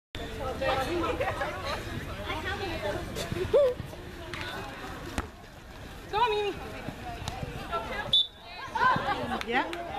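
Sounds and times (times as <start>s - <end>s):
indistinct chatter: 0.2s - 9.9s.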